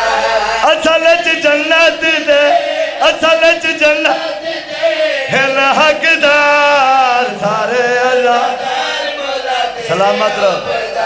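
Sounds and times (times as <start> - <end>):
man chanting through a microphone: 0.4 - 8.7, 9.7 - 11.0.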